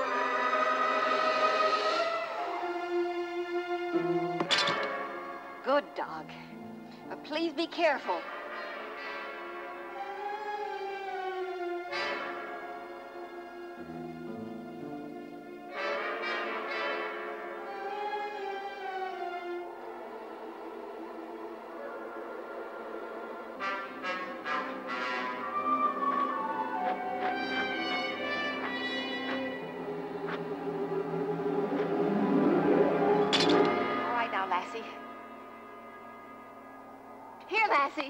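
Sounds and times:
dramatic orchestral music: 0:00.0 - 0:37.4.

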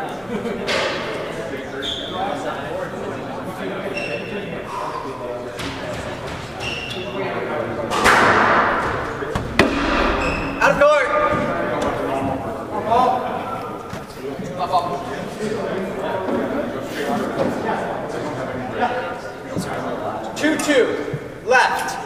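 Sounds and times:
squash ball knocks: 0:07.9 - 0:10.2.

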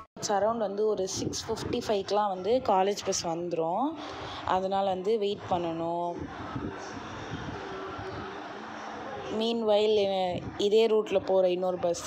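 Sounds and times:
roadside traffic noise: 0:04.0 - 0:12.0.

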